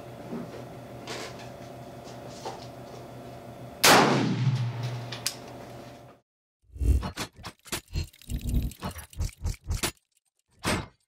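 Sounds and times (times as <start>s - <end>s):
rifle shot: 3.8s - 4.8s
metallic clockwork clanks and clicks: 7.0s - 11.0s.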